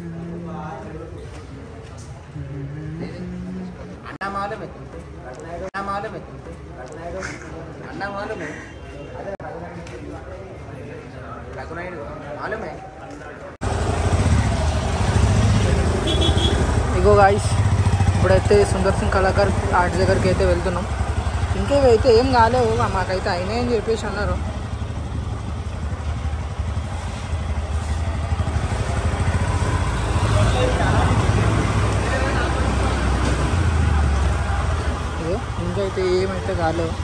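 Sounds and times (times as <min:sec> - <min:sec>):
motorcycle engine rumbling: 0:13.6 - 0:37.0.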